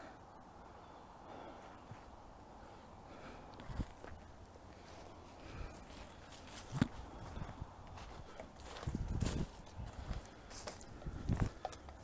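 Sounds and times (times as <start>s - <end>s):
footsteps through dry leaves: 4.8s - 11.6s.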